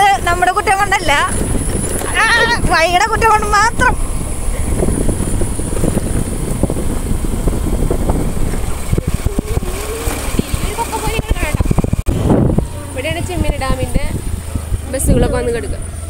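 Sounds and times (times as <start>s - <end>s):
motorcycle rattling over gravel: 0.0s - 16.0s
wind buffeting microphone: 0.0s - 16.0s.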